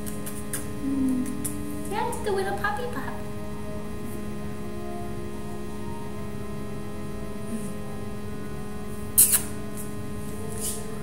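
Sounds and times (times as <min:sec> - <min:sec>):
electrical mains hum: 0:00.0 - 0:11.0
high-pitched squeaks: 0:09.2 - 0:09.6.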